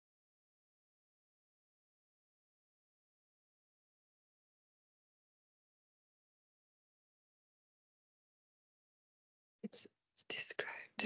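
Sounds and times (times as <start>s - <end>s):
person whispering: 9.7s - 11.0s.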